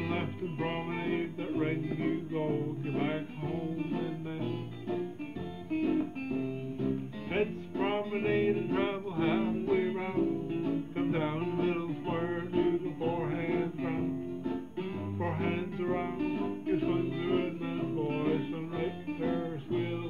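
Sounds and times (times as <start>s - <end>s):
country music with caller singing: 0.0s - 6.4s, 7.1s - 20.0s
strummed acoustic guitar: 0.0s - 20.0s.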